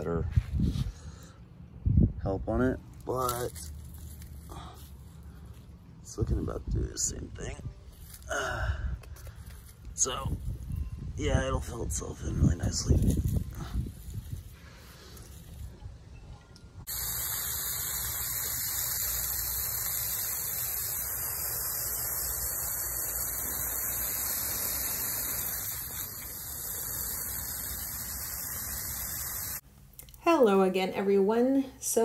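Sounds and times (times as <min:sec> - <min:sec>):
steady hiss: 0:16.8 - 0:29.6.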